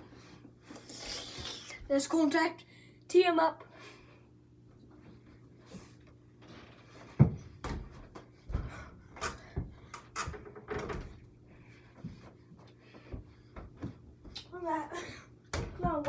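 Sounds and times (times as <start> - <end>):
ball striking hoop and door: 15.5 - 16.0.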